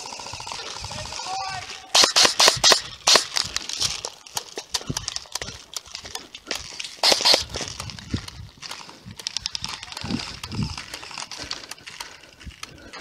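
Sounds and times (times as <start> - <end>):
airsoft rifle shots: 0.0 - 3.6, 7.0 - 7.6.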